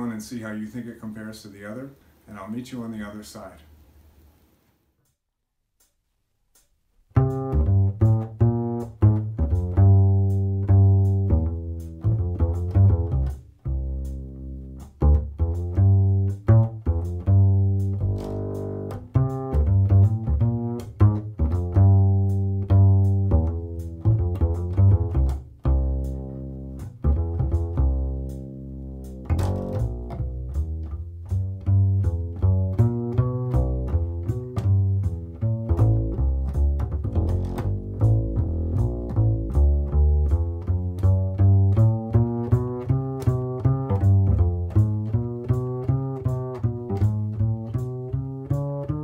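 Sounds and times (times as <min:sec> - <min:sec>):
double bass plucked jazz line: 0:07.0 - 0:49.0.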